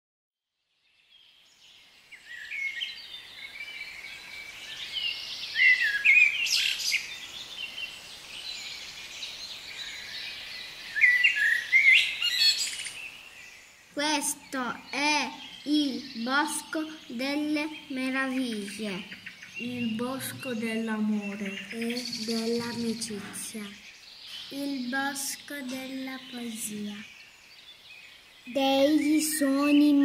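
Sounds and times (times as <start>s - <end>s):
birds chirping: 1.2s - 30.0s.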